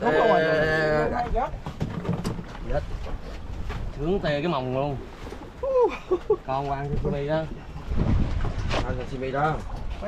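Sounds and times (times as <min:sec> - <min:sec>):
sea noise: 0:00.0 - 0:10.0
wind: 0:00.0 - 0:10.0.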